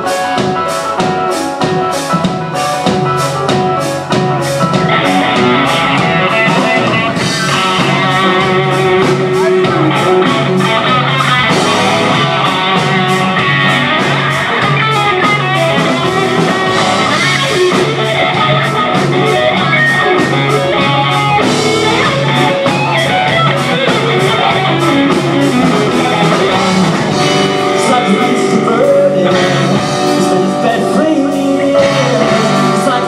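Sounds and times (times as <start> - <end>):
bass: 0.0 - 33.0
drum kit cymbal beat: 0.0 - 33.0
electric guitar: 0.0 - 33.0
keyboard: 0.0 - 33.0.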